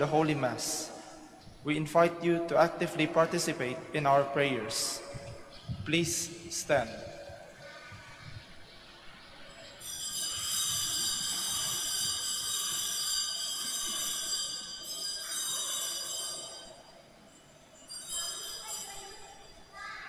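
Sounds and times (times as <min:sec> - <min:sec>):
hand bell ringing: 0:09.8 - 0:17.0, 0:17.8 - 0:19.6.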